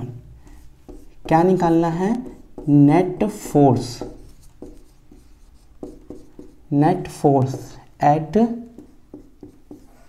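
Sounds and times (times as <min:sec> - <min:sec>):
marker pen writing on whiteboard: 0:00.0 - 0:10.0.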